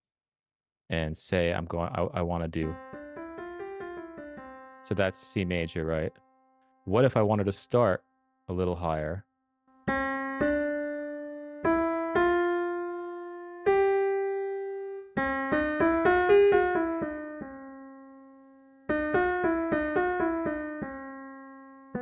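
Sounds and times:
piano playing a scale: 2.6s - 8.0s, 9.7s - 22.0s.

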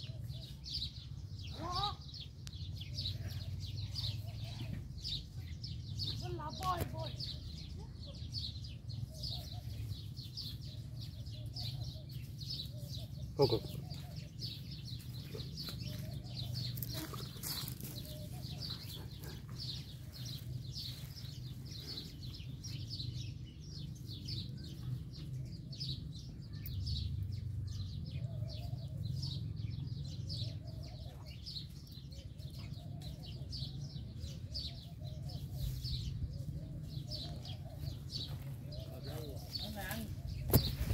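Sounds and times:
small birds chirping: 0.0s - 40.9s.

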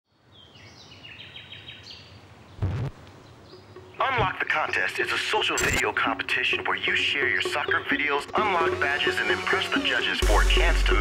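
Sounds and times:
faint outdoor background noise: 0.1s - 7.4s
birds chirping and whistling: 0.4s - 4.7s.

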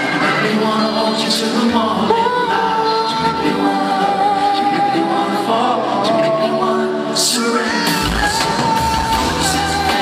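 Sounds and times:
male vocal group singing harmonies: 0.0s - 10.0s.

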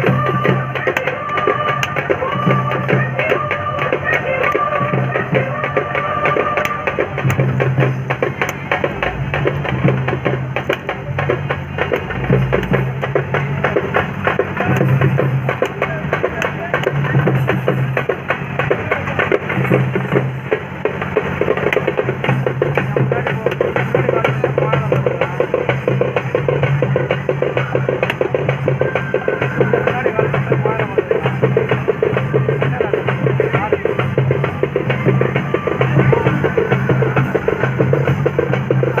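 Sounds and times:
drums struck quickly: 0.0s - 39.0s.

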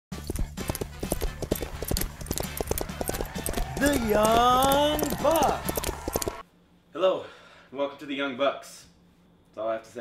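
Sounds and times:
hooves clip-clopping: 0.1s - 6.4s
man speaking: 3.8s - 5.7s.

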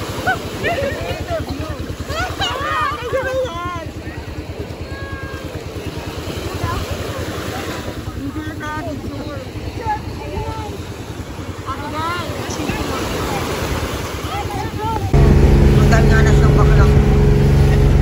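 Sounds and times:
motorboat engine rumbling: 0.0s - 18.0s
people talking: 0.2s - 11.0s, 11.6s - 18.0s.

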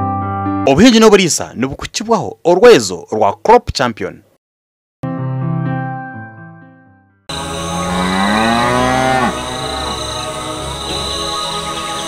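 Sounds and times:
cow mooing: 7.6s - 10.0s.

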